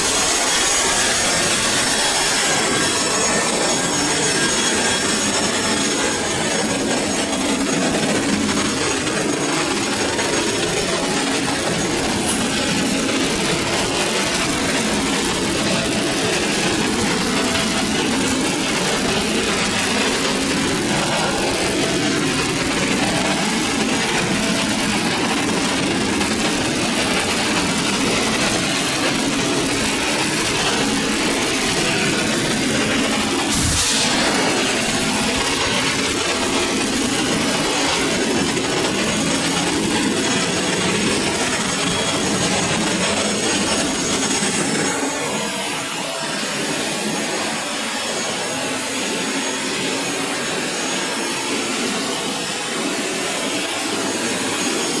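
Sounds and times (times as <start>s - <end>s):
engine room machinery din: 0.0s - 55.0s.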